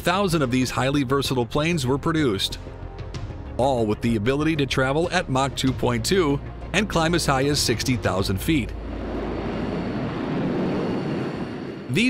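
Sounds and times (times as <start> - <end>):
jet engine noise: 7.1 - 12.0.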